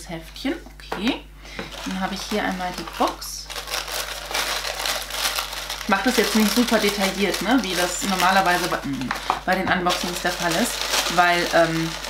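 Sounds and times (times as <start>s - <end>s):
tissue paper rustling and crinkling: 1.6s - 12.0s.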